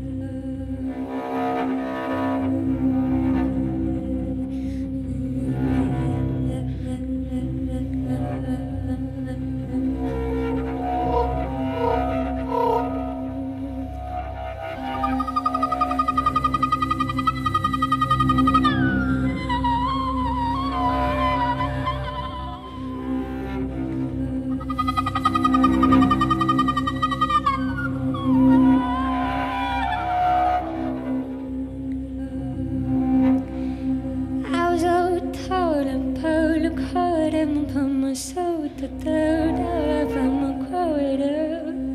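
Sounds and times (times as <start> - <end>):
cello playing held tones: 8.0 - 34.9.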